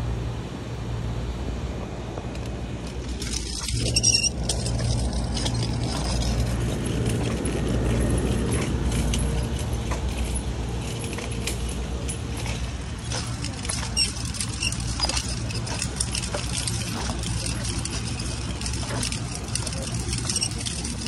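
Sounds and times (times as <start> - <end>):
cart wheels rumbling: 2.2 - 21.0
shopping cart rattling on concrete: 2.7 - 21.0.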